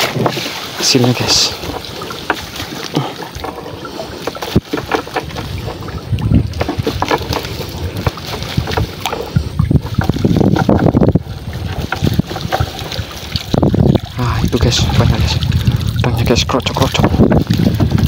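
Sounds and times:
water splashing and dripping: 0.0 - 18.0
net knocking and rustling: 4.2 - 14.1.

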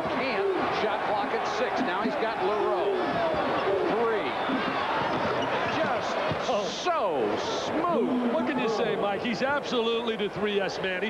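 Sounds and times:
arena crowd voices: 0.0 - 11.0.

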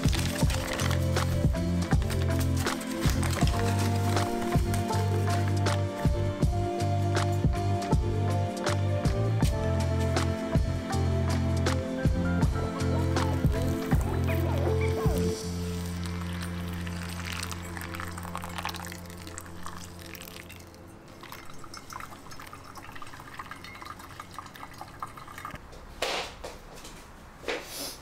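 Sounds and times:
background music: 0.0 - 25.5
water trickling through coffee: 15.1 - 25.6.

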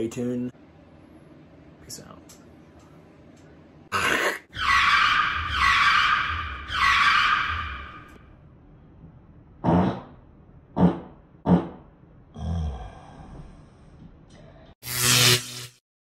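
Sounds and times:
sharp noisy burst: 14.8 - 15.8.

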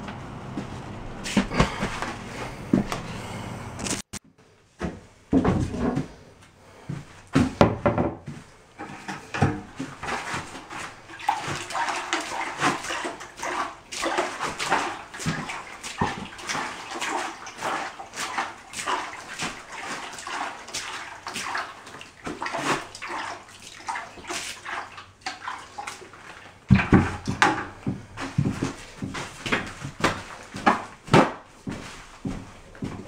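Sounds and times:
water splashing onto mortar mix: 9.8 - 31.4.

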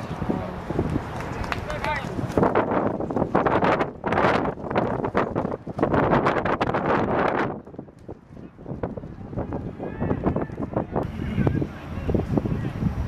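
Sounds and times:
people shouting: 9.4 - 12.1.

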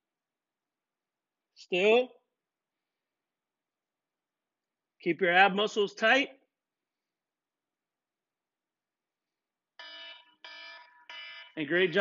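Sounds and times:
electronic timer beeping: 9.8 - 12.0.

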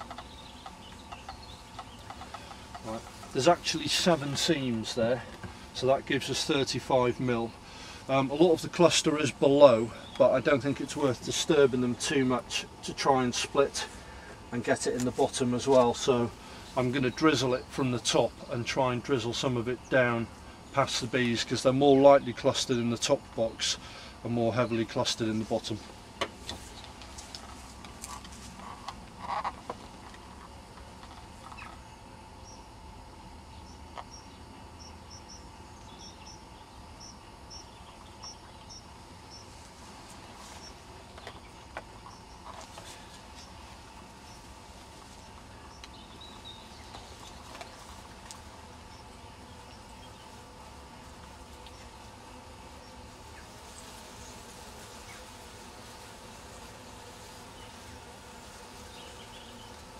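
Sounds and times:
knocks of wooden hive parts: 0.0 - 3.6
bees humming: 0.0 - 59.9.

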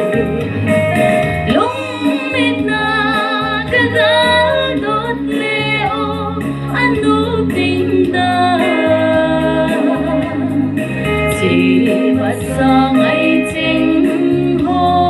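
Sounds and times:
instrumental accompaniment: 0.0 - 15.0
steady low bass line: 0.0 - 15.0
woman singing with vibrato: 0.0 - 15.0.

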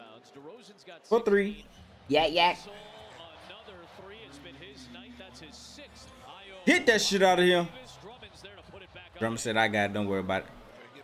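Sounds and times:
commentator speaking: 6.6 - 7.9, 8.6 - 10.6.

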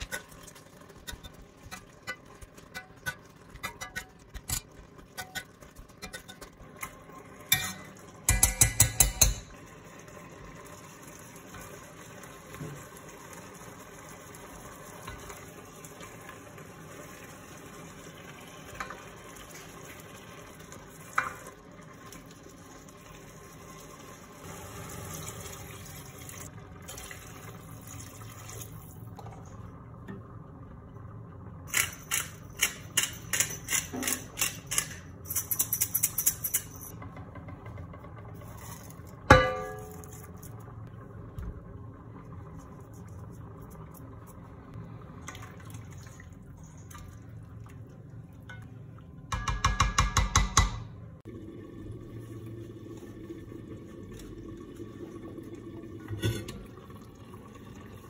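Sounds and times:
spoon stirring sauce in a pot: 0.0 - 9.5
water pouring into a pot: 0.0 - 33.7, 38.3 - 49.3, 51.2 - 58.0
spoon knocking against pot: 7.5 - 9.5, 49.3 - 50.9.

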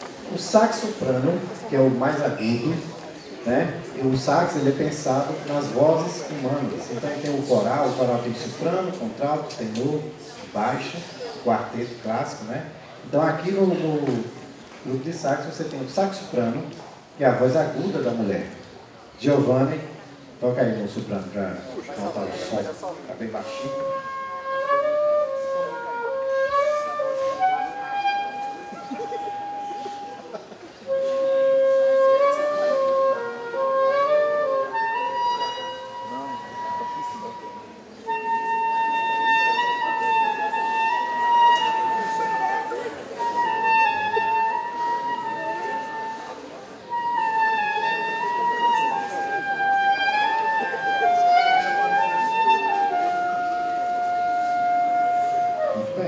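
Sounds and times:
soprano saxophone melody: 23.4 - 56.0.

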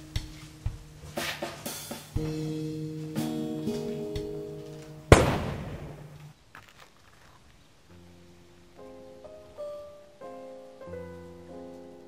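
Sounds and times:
held musical notes: 0.0 - 6.3
loud sharp bang: 5.1 - 6.3.

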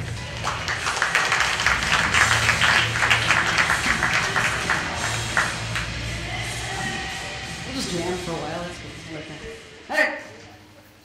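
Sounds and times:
audience applauding: 0.0 - 6.1
music playing: 0.0 - 11.0.

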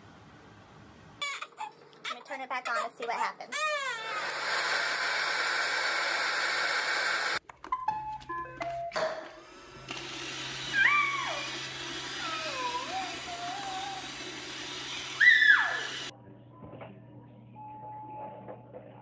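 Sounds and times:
robot vacuum humming: 4.2 - 7.4, 9.4 - 16.1.

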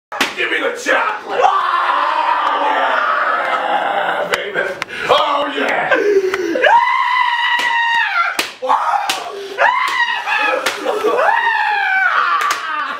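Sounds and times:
sharp slaps: 0.1 - 0.5, 7.4 - 11.0, 12.3 - 12.8
person screaming: 1.3 - 4.3, 5.9 - 12.9.

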